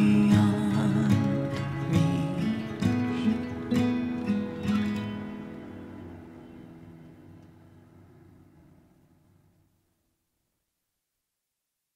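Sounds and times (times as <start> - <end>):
acoustic guitar chord ringing: 0.0 - 8.2.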